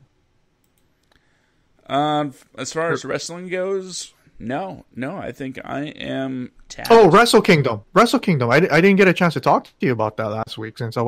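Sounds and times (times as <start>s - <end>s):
faint click: 0.6s - 1.3s
man speaking: 1.8s - 11.0s.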